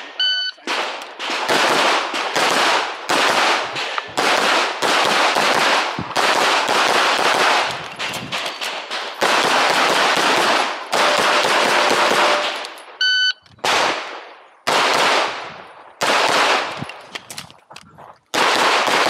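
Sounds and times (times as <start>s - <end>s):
electronic shot timer beep: 0.2s - 0.6s, 13.0s - 13.4s
pistol shots: 0.6s - 13.0s, 13.6s - 16.9s, 18.3s - 19.0s.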